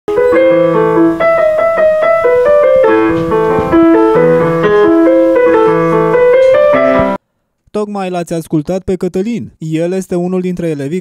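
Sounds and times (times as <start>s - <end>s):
electronic keyboard piano tune: 0.1s - 7.2s.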